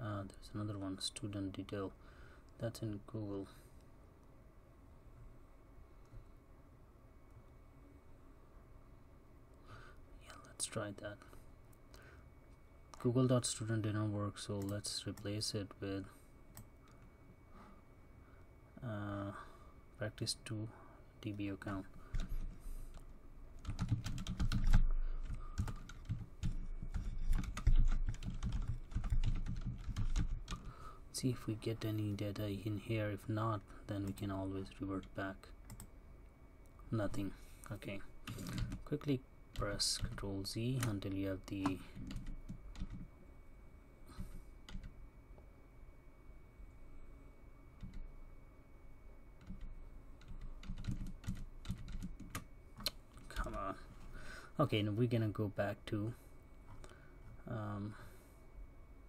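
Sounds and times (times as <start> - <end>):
typing on computer keyboard: 23.6 - 30.7, 41.6 - 43.0, 49.4 - 52.4.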